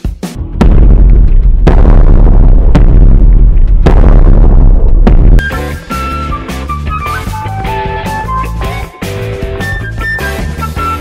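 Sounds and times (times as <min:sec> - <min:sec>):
deep continuous rumble: 0:00.4 - 0:05.4
giant footsteps booming thuds: 0:00.4 - 0:05.6.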